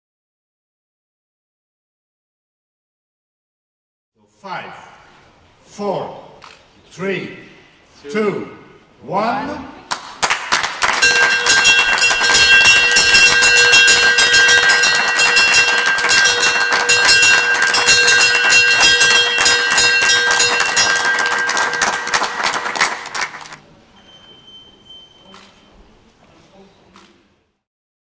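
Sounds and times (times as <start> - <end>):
brass bell ringing rapidly: 10.9 - 23.3.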